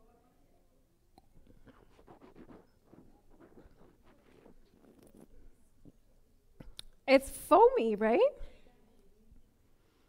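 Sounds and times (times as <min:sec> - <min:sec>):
champagne swished in mouth: 0:01.5 - 0:05.4.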